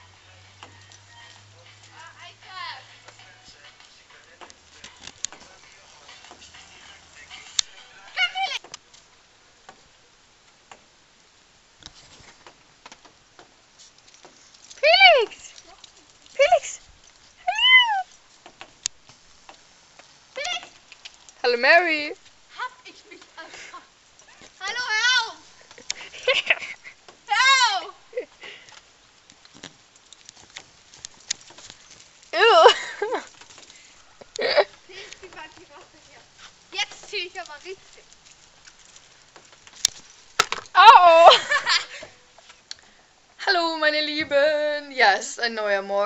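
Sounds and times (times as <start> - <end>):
child's voice warbling: 8.2 - 8.6, 17.4 - 18.1, 20.4 - 20.7, 24.6 - 25.4, 27.3 - 28.0, 40.8 - 41.4.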